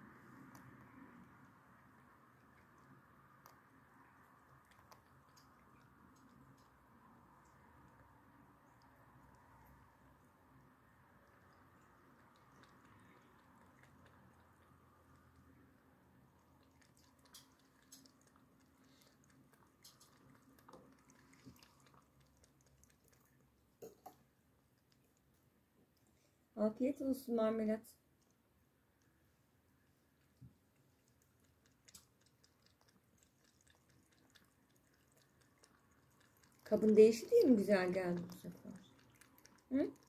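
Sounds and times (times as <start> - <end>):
low room hum: 0.0 - 40.0
cat lapping milk: 0.2 - 26.4, 28.0 - 40.0.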